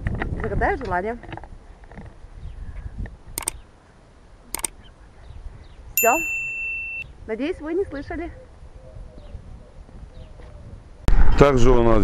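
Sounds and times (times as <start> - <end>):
sharp double clicks: 3.4 - 3.6, 4.5 - 4.8.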